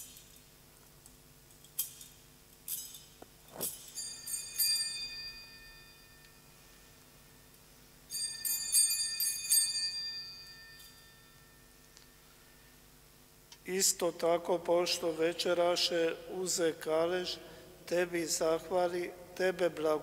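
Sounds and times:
altar bells ringing: 0:03.8 - 0:07.0, 0:08.1 - 0:11.9.

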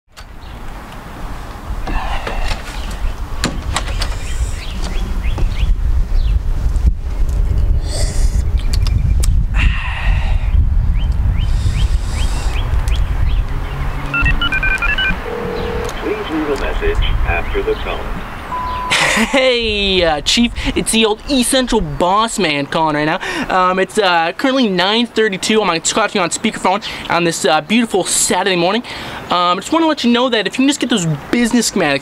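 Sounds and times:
short electronic phone beeps: 0:14.1 - 0:16.0, 0:18.5 - 0:19.0
steady phone tone: 0:14.1 - 0:16.4, 0:18.5 - 0:19.0
heavy low rumble: 0:14.2 - 0:20.6.

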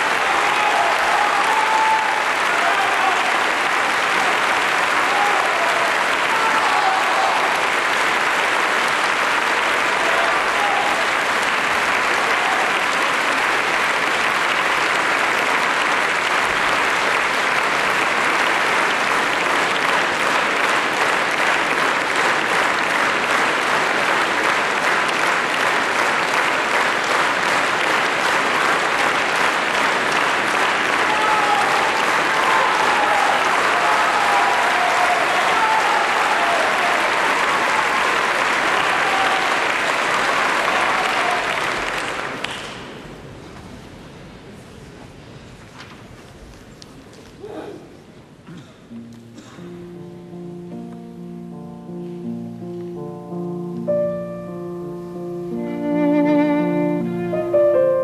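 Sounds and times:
audience applauding: 0:00.0 - 0:43.4, 0:48.9 - 0:58.0.

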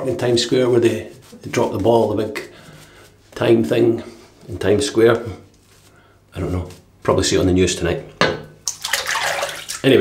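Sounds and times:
water running from a tap: 0:08.7 - 0:10.0.

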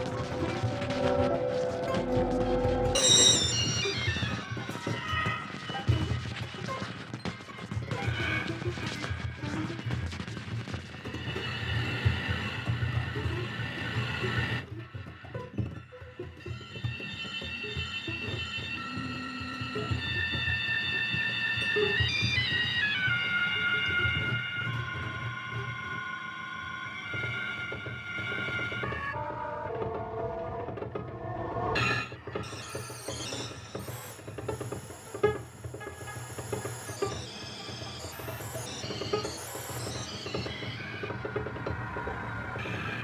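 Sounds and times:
layered sustained tones: 0:00.0 - 0:04.3.

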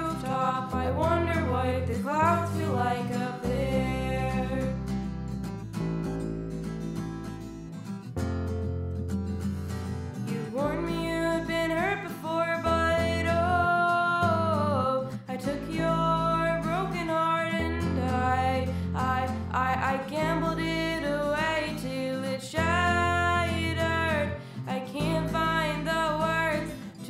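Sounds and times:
person singing: 0:00.0 - 0:04.8, 0:10.3 - 0:27.0
strummed acoustic guitar: 0:00.0 - 0:27.0.

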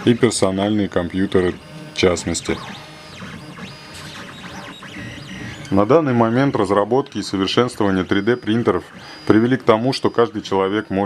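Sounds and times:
three-d printer stepper motors whining: 0:00.0 - 0:11.0.

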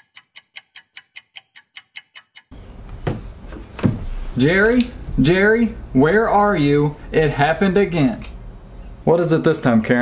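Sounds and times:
rapid even ticking: 0:00.0 - 0:02.6.

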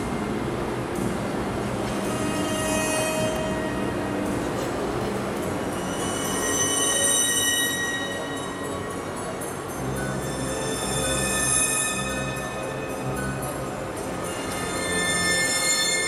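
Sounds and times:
music with long high notes: 0:00.0 - 0:16.0.

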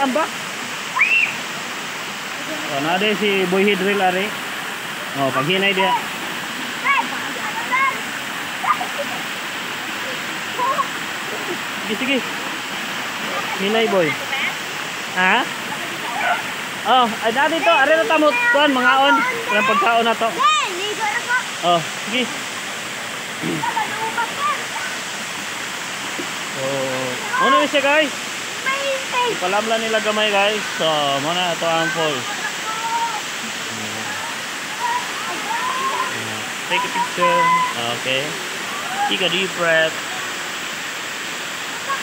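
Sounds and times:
small waterfall rushing over rock: 0:00.0 - 0:42.0.

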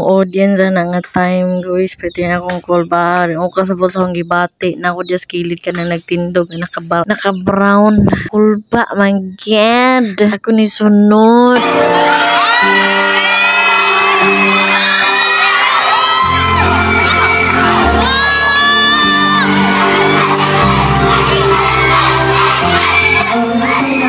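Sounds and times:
children shouting and cheering: 0:11.5 - 0:24.0
loud music with bass: 0:14.0 - 0:24.0.

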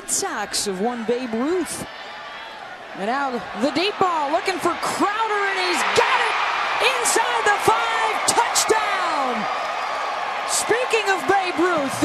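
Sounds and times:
stadium crowd noise: 0:00.0 - 0:12.0
tv commentary: 0:03.0 - 0:09.5, 0:10.5 - 0:12.0.

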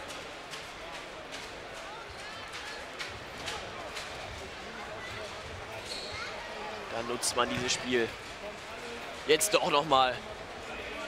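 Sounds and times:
crowd murmur: 0:00.0 - 0:11.0
shoes squeaking on floor: 0:05.8 - 0:06.4.

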